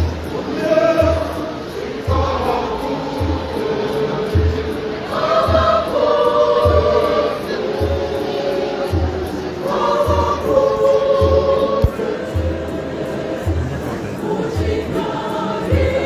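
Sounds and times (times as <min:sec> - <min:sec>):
mixed choir singing chords: 0:00.0 - 0:16.0
steady low drum beat: 0:01.0 - 0:16.0.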